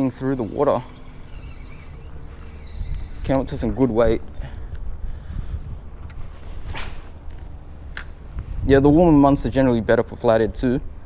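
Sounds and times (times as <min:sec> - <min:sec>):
wind rumbling on microphone: 0:00.0 - 0:11.0
short swish: 0:06.3 - 0:07.2
sharp click: 0:07.9 - 0:08.2.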